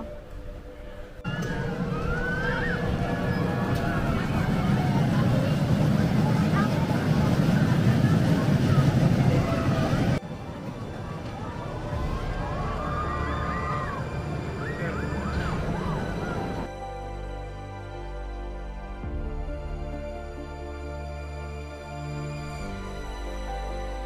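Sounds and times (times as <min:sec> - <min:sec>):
roller coaster rumbling on track: 0:00.0 - 0:16.8
voices calling: 0:01.3 - 0:16.7.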